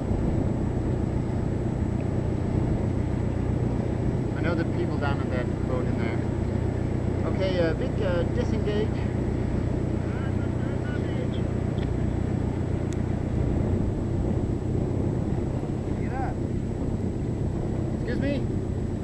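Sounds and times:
submarine engine hum: 0.0s - 19.0s.

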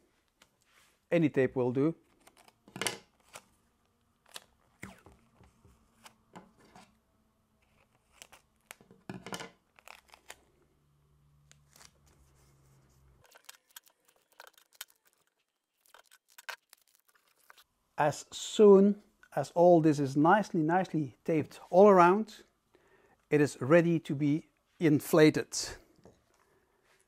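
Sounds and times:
packing tape ripping: 7.6s - 8.8s, 9.7s - 10.4s, 13.2s - 17.6s.

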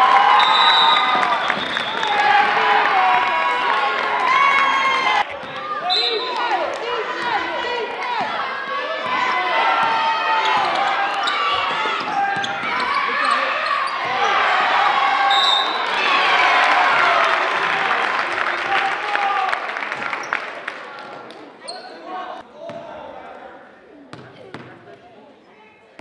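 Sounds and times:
people shouting: 1.9s - 18.0s.

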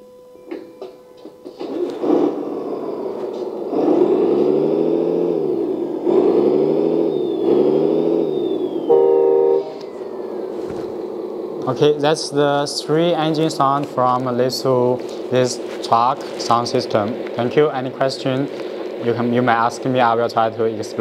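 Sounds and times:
simulated engine revving from speaker: 1.6s - 21.0s
short steady tone: 8.6s - 10.3s.

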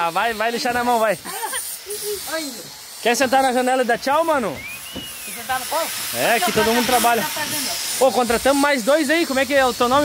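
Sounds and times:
high-pitched hiss: 0.0s - 10.0s.

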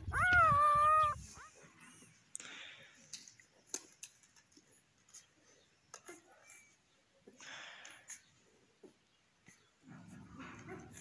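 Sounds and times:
puppy crying: 0.0s - 1.6s.

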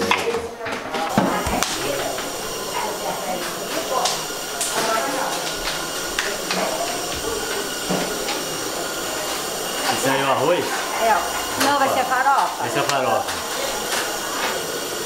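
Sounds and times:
kitchen utensils and lids clattering: 0.0s - 15.0s
voices talking: 0.0s - 15.0s
gas burner hissing: 0.8s - 15.0s.

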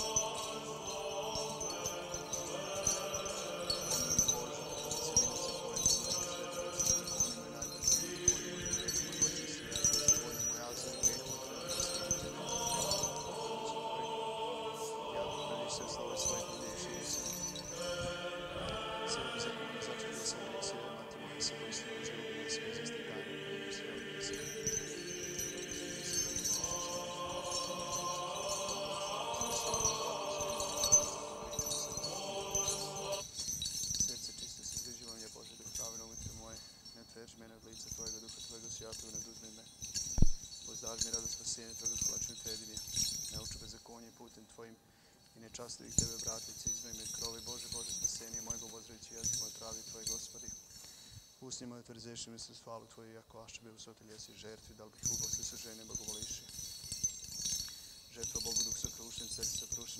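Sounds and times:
faint held chanting: 0.0s - 33.4s
small bells jingling: 0.0s - 59.9s.

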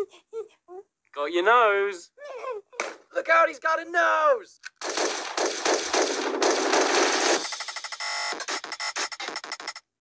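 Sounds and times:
fast clicks: 4.7s - 9.9s
loud rapid rattling: 4.8s - 9.8s.

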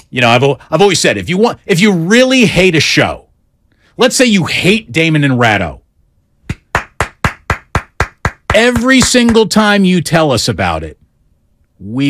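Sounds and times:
man clapping hands: 6.5s - 9.5s.

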